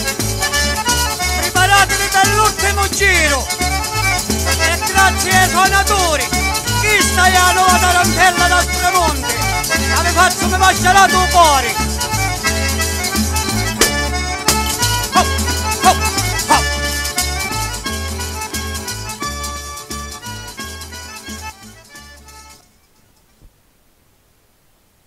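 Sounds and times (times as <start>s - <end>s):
repeating bass: 0.0s - 21.7s
accordion folk dance tune: 0.0s - 22.8s.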